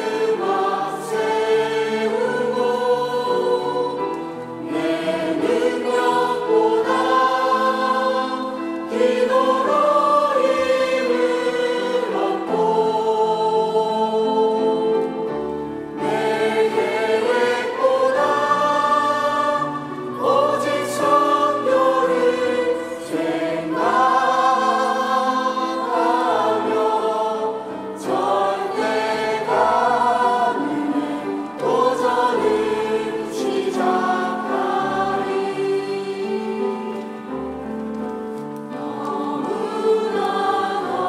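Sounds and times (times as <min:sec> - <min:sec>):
choir singing a hymn: 0:00.0 - 0:41.0.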